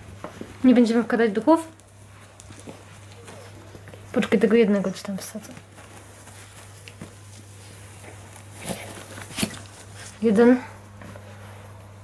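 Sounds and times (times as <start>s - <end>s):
steady low hum: 0.0s - 12.0s
dog mouthing plush toy rustling: 5.4s - 11.7s.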